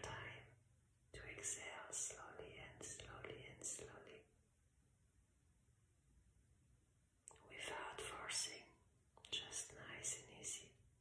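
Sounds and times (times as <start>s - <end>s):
woman whispering: 0.0s - 0.6s, 1.2s - 4.3s, 7.3s - 10.8s.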